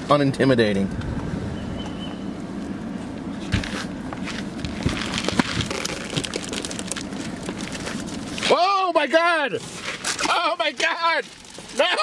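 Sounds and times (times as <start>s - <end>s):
paper rustling: 3.4s - 8.6s
deer eating from paper bucket: 3.6s - 8.6s, 9.5s - 12.0s.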